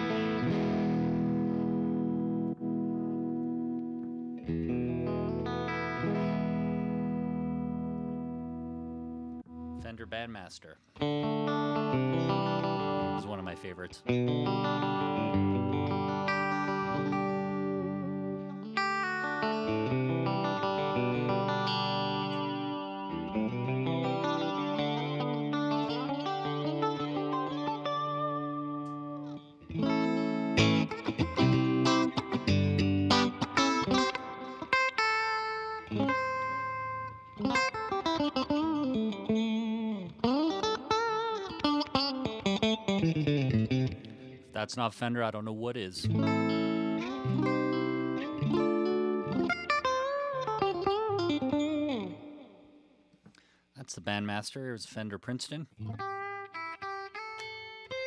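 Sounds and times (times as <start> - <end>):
clean electric guitar: 0.0 - 53.6, 54.6 - 58.0.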